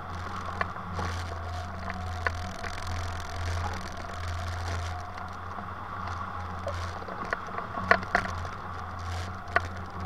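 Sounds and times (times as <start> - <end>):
wind rushing over camera: 0.0 - 10.0.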